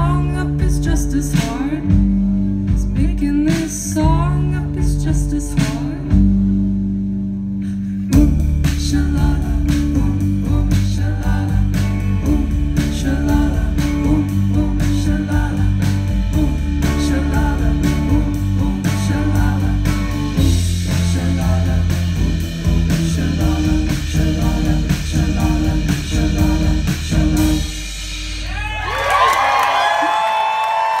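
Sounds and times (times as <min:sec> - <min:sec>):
live band with electric guitar: 0:00.0 - 0:31.0
audience cheering and whistling: 0:28.4 - 0:31.0.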